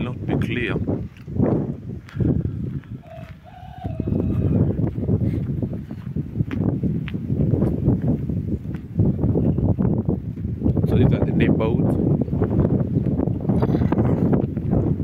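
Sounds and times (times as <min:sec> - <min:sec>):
microphone handling noise: 0:00.0 - 0:15.0
wind on microphone: 0:00.0 - 0:15.0.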